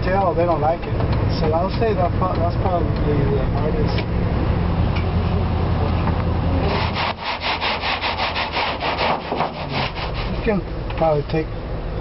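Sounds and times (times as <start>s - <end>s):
truck cab road rumble: 0.0s - 12.0s
fast rubbing strokes: 6.7s - 10.6s.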